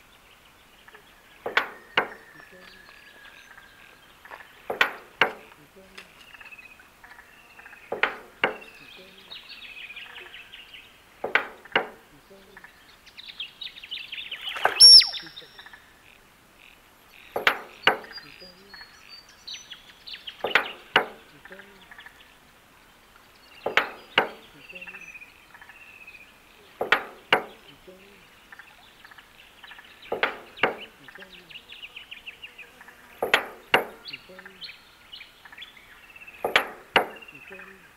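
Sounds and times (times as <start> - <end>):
faint fast chirping: 0.0 - 37.9
loud knocks: 7.9 - 8.7, 11.2 - 12.0, 23.7 - 24.4, 26.8 - 27.6
piercing bird whistle: 14.3 - 15.7.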